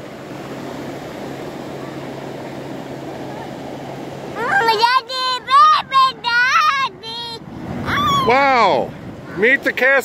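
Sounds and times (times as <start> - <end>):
ocean surf breaking: 0.0 - 10.0.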